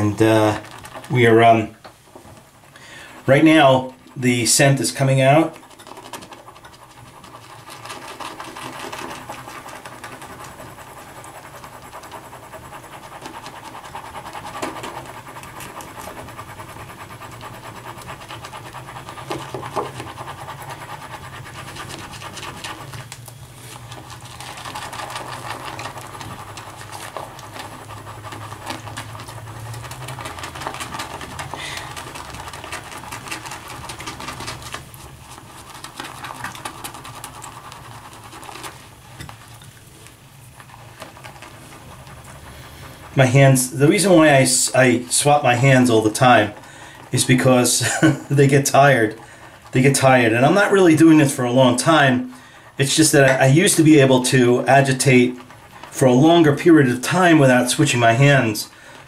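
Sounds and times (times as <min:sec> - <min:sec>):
shaving brush swishing in bowl: 0:00.0 - 0:59.0.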